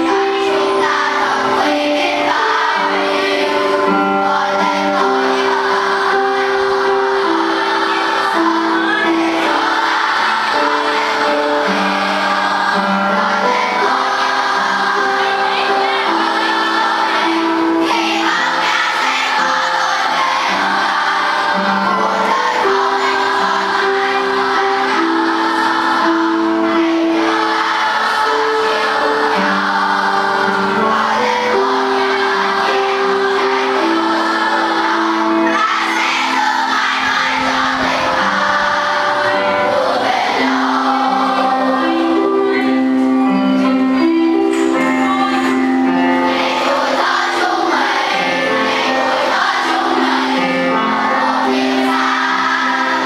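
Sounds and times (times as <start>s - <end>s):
children's choir singing: 0.0s - 53.0s.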